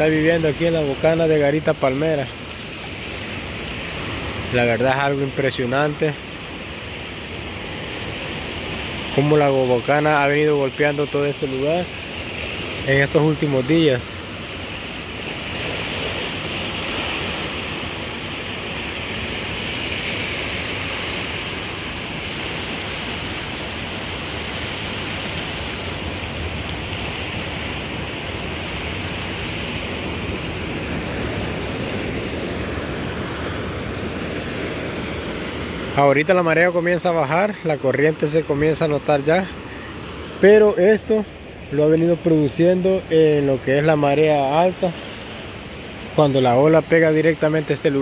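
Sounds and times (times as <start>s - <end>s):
surf breaking on sand beach: 0.0s - 48.0s.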